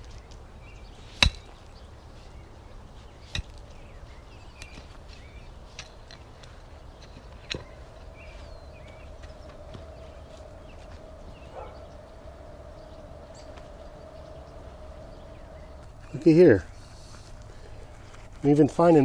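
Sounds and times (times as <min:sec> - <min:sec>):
pickaxe striking hard soil: 0:01.2 - 0:01.6, 0:03.2 - 0:03.7.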